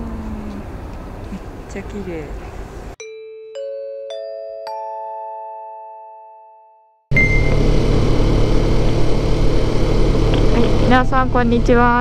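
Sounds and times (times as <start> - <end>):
motorcycle engine humming: 7.1 - 12.0
rushing noise: 7.1 - 12.0.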